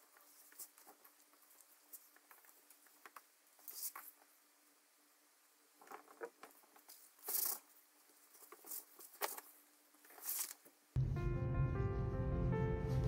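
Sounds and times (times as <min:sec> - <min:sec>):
faint steady hum: 0:00.0 - 0:12.6.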